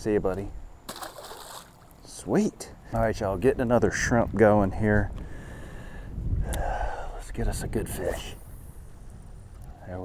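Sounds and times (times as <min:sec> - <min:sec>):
wind rumbling on microphone: 0:03.0 - 0:10.0.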